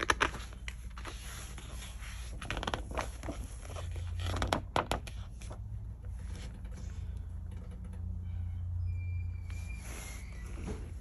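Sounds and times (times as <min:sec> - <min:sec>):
book page turning: 0:00.0 - 0:06.6.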